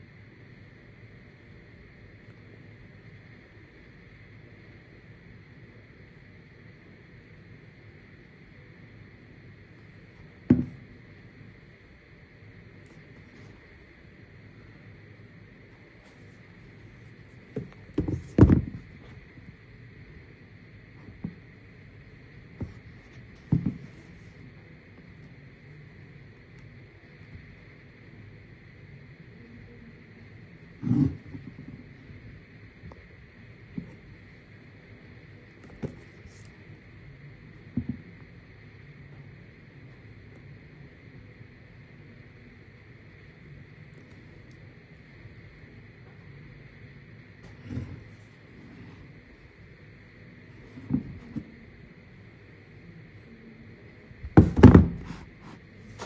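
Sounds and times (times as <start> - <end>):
sneaker handling knocks: 10.5 - 10.8, 17.5 - 19.2, 22.6 - 24.0, 50.8 - 51.5, 54.2 - 56.0.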